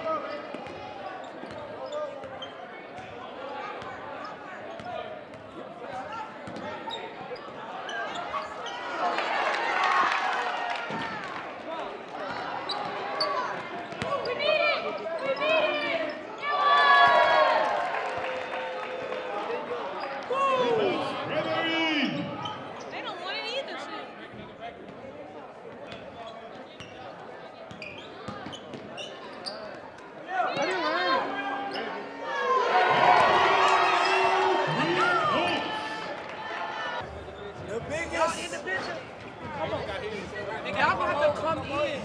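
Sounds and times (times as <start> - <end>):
sneakers squeaking: 0.4 - 9.0, 12.3 - 17.2, 22.0 - 23.4, 25.7 - 32.2.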